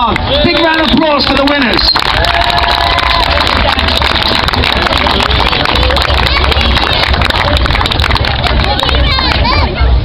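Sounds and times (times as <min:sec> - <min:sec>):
crowd clapping: 0:00.0 - 0:09.7
crowd voices: 0:00.0 - 0:10.0.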